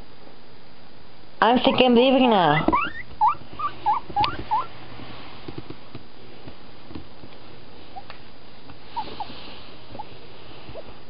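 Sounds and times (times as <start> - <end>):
guinea pig squeaking: 1.4 - 4.8, 8.9 - 9.4.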